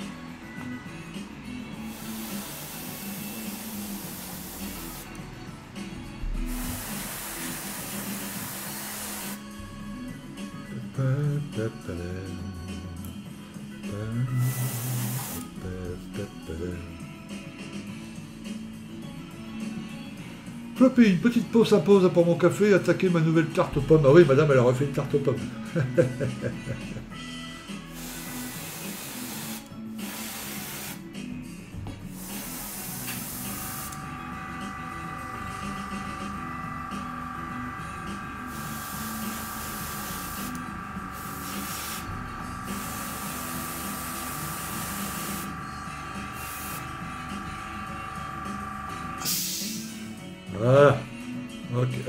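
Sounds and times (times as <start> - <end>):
background music: 0.0 - 52.0
air hiss bursts: 1.7 - 5.2, 6.2 - 9.5, 14.4 - 15.5, 27.8 - 31.2, 32.1 - 36.5, 38.4 - 50.2
small motor whining: 1.7 - 5.2, 32.1 - 49.2.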